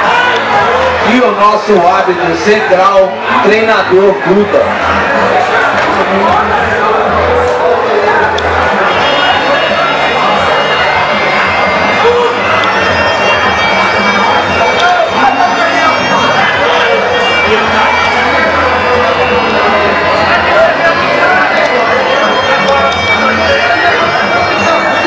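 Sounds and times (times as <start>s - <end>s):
crowd noise: 0.0s - 25.0s.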